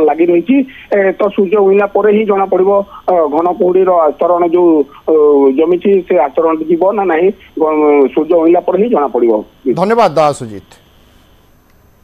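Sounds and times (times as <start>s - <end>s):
person speaking over telephone: 9.7s - 10.8s.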